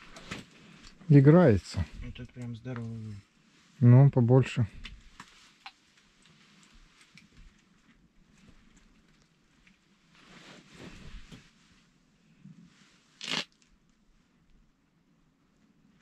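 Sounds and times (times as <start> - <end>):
rustling of heavy clothing: 0.0 - 2.2, 5.0 - 13.2
sharp scratchy noise: 13.2 - 13.5.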